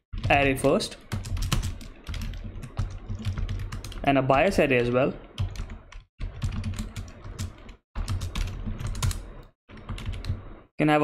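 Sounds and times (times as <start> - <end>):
computer keyboard typing: 0.2 - 4.5, 5.4 - 10.4.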